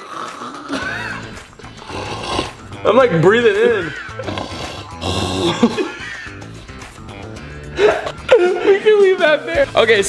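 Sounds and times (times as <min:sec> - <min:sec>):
rasping breath through cardboard tube: 0:00.0 - 0:02.8, 0:04.2 - 0:05.6.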